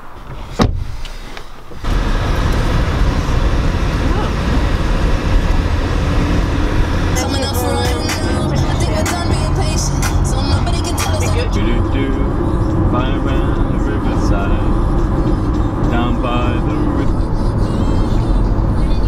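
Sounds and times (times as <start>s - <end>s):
car road and engine rumble: 0.0s - 19.0s
person singing or talking: 7.1s - 14.8s, 15.7s - 19.0s.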